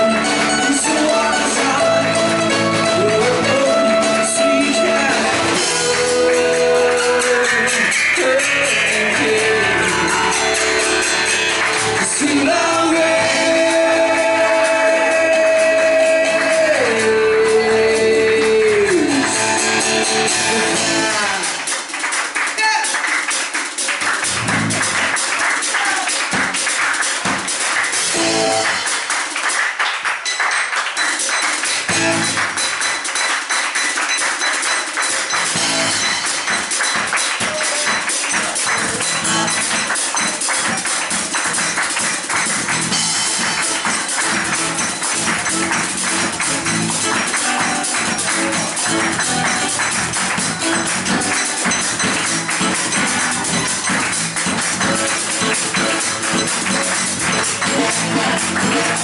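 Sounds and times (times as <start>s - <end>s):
low bass notes: 0.0s - 21.5s, 24.3s - 25.1s, 28.1s - 28.7s, 31.9s - 32.5s, 35.5s - 36.2s, 38.7s - 39.9s, 41.4s - 59.0s
acoustic guitar: 0.0s - 22.1s, 26.1s - 29.2s, 30.2s - 59.0s
drum kit with cymbals: 0.0s - 29.4s, 30.9s - 59.0s.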